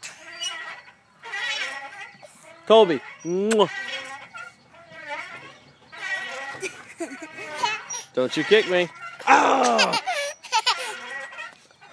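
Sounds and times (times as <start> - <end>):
toddler laughing and squealing: 6.5 - 8.2, 9.2 - 11.3.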